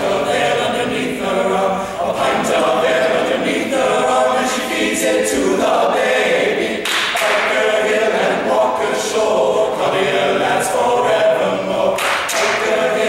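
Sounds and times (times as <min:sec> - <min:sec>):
male a cappella group singing: 0:00.0 - 0:13.0.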